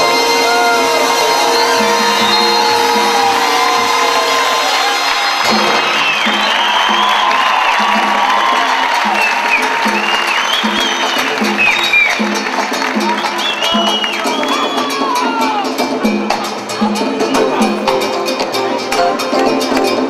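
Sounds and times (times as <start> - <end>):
audience cheering and whooping: 0.0 - 16.0
congas: 0.0 - 20.0
salsa band playing: 0.0 - 20.0.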